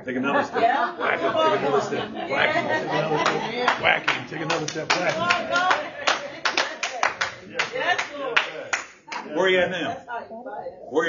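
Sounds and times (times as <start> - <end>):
congregation clapping: 2.5 - 9.3.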